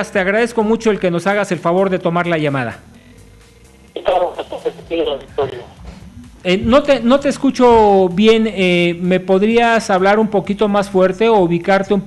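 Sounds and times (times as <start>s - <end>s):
faint open-line noise: 2.8s - 8.9s
man talking over telephone: 3.9s - 5.8s, 6.4s - 8.7s.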